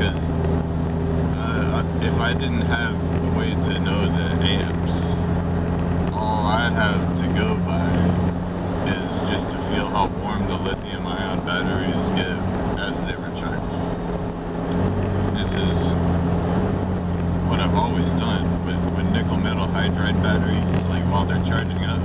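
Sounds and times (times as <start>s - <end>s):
car engine and road drone: 0.0s - 22.0s.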